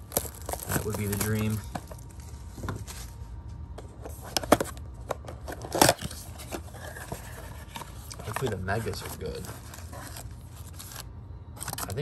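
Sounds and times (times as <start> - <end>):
cardboard tearing: 0.0 - 1.6, 5.5 - 11.0
cardboard box crackling: 0.0 - 2.1, 5.5 - 11.0.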